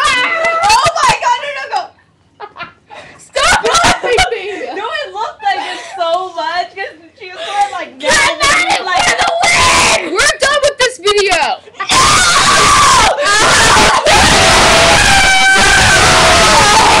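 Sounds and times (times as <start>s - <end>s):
girls screaming and laughing: 3.4s - 4.5s, 11.8s - 17.0s.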